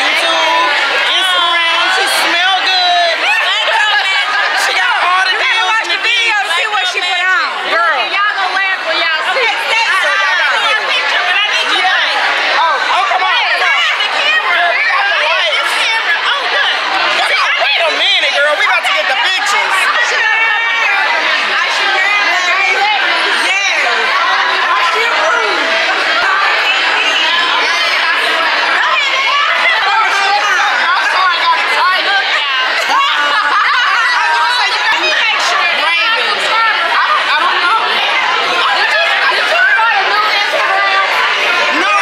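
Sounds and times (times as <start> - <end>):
women talking excitedly: 0.0 - 42.0.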